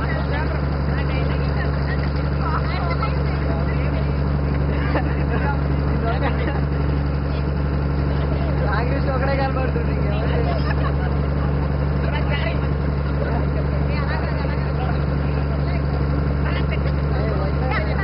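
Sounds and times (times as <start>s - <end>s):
boat engine droning: 0.0s - 18.0s
faint voices of young men: 0.0s - 18.0s.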